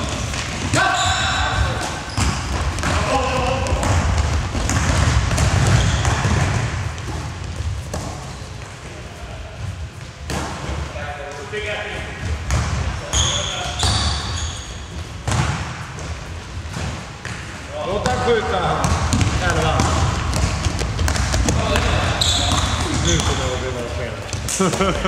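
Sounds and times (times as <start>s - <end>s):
basketball bouncing on court: 0.0s - 8.8s, 12.1s - 25.0s
players running footsteps: 0.0s - 10.2s, 18.9s - 25.0s.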